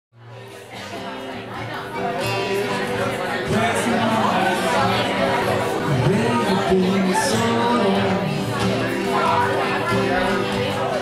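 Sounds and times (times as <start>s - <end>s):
acoustic guitar playing: 0.2s - 11.0s
crowd chatter: 0.2s - 11.0s.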